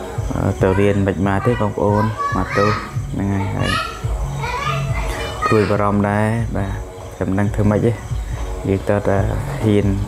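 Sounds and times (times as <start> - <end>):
young children talking and calling: 0.2 - 6.4.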